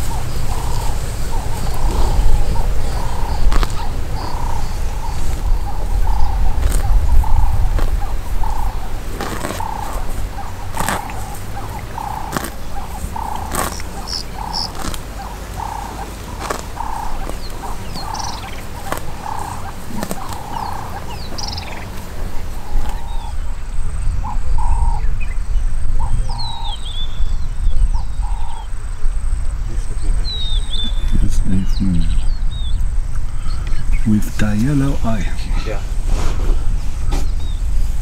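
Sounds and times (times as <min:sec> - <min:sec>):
buffalo tearing grass: 0:00.0 - 0:05.6, 0:06.6 - 0:22.9
small bird chirps: 0:00.0 - 0:21.9
low rumble: 0:00.0 - 0:38.0.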